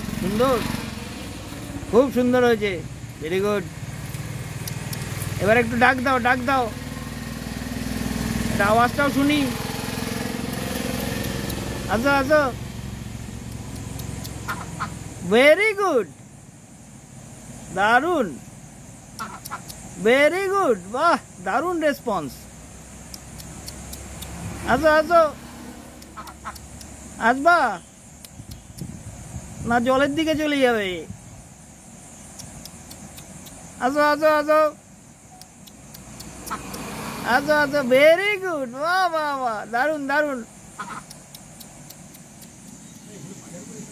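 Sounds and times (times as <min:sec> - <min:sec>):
faint ticks: 0:03.9 - 0:05.4, 0:10.5 - 0:11.8, 0:13.4 - 0:14.9, 0:19.1 - 0:20.0, 0:22.9 - 0:24.4, 0:25.9 - 0:27.1, 0:28.1 - 0:28.9, 0:32.1 - 0:33.7, 0:35.2 - 0:36.9, 0:40.8 - 0:43.1
duck quacking: 0:14.4 - 0:15.0, 0:19.2 - 0:19.7, 0:26.1 - 0:26.7, 0:36.5 - 0:36.8, 0:40.8 - 0:41.1.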